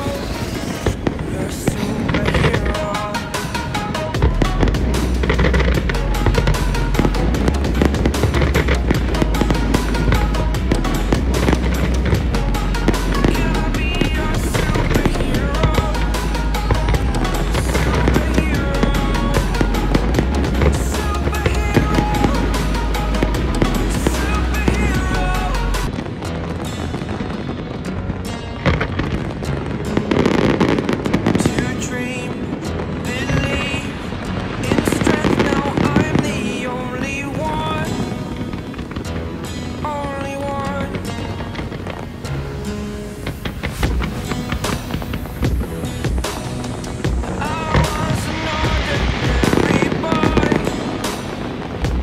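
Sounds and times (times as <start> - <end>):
fireworks bursting and crackling: 0.0 - 52.0
music playing: 0.0 - 52.0.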